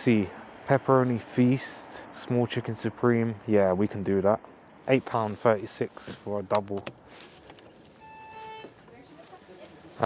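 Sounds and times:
electronic beep: 0:08.0 - 0:08.7.

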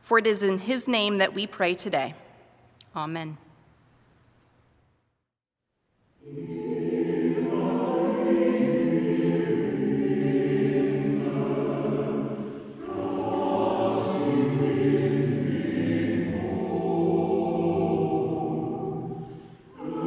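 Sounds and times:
choir singing sustained chords: 0:06.2 - 0:20.0.

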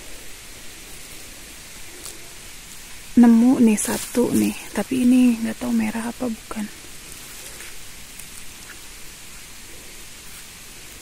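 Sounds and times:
background hiss: 0:00.0 - 0:11.0
dry needles crackling: 0:00.0 - 0:11.0.

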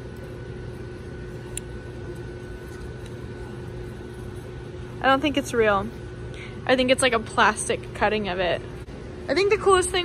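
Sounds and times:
ventilation hum: 0:00.0 - 0:10.0.

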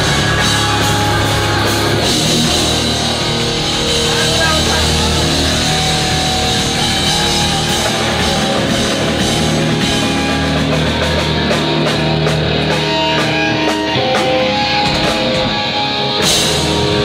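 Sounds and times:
bass guitar: 0:00.0 - 0:17.0
distorted electric guitars: 0:00.0 - 0:17.0
drum kit: 0:00.0 - 0:17.0
vocalist screaming: 0:04.2 - 0:09.0.

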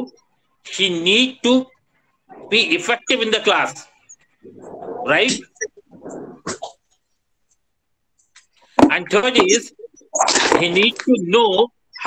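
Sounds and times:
man talking over video call: 0:00.0 - 0:04.0, 0:05.0 - 0:05.6, 0:08.8 - 0:12.0.

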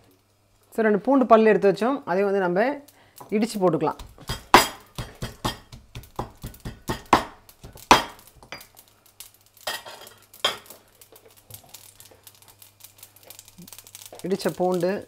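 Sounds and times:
stone pestle pounding in mortar: 0:04.0 - 0:08.2.

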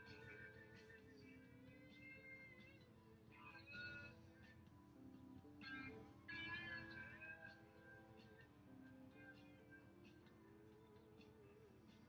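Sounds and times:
quiet music: 0:00.0 - 0:12.0.

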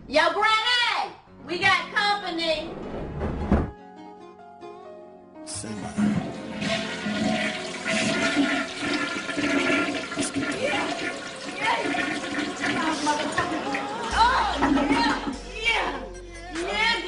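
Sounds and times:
rushing water: 0:06.3 - 0:15.0.

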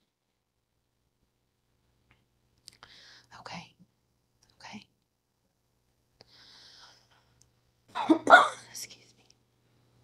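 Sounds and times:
woman whispering: 0:03.2 - 0:03.8, 0:04.4 - 0:04.9, 0:08.6 - 0:09.3.

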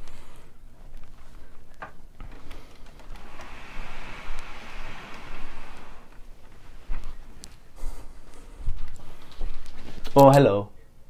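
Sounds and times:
rustling handling noise: 0:00.7 - 0:10.4
steady hiss: 0:02.2 - 0:10.2.

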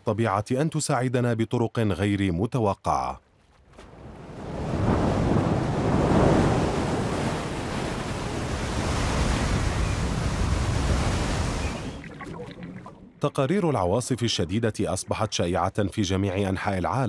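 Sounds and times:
wind: 0:00.0 - 0:17.0
waves crashing against a stone wall: 0:04.4 - 0:12.0.

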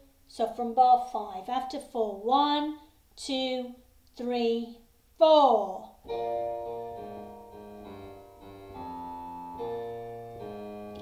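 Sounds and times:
digital piano with walking bass: 0:06.1 - 0:11.0.

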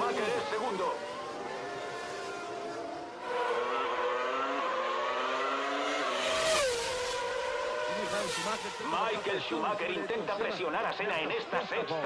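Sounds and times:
race car engines at high revs: 0:00.0 - 0:12.0.

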